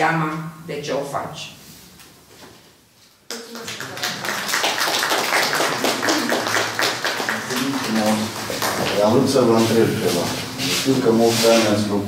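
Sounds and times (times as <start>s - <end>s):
audience applauding: 3.3s - 9.7s.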